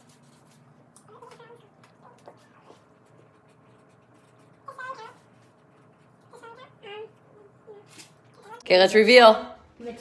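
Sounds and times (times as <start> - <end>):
pens writing on paper: 2.1 - 6.6.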